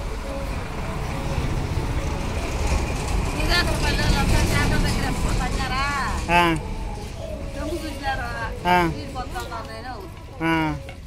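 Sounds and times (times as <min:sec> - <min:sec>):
person speaking: 0:06.3 - 0:06.6, 0:08.6 - 0:09.0, 0:10.4 - 0:10.9.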